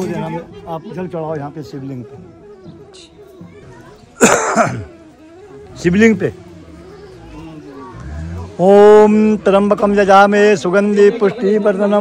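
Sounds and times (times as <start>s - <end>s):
loud rough cough: 4.2s - 4.9s.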